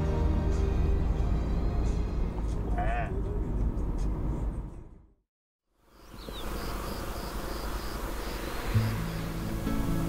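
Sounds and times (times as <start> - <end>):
steady outdoor hiss: 5.7 - 10.0
insect chirping: 5.8 - 10.0
music with low notes: 8.7 - 10.0.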